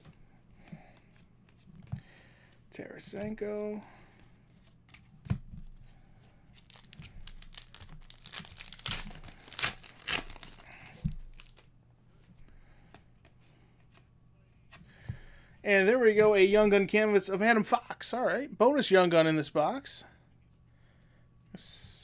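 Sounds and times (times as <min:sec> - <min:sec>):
cards scraping and crinkling: 0:06.5 - 0:11.7.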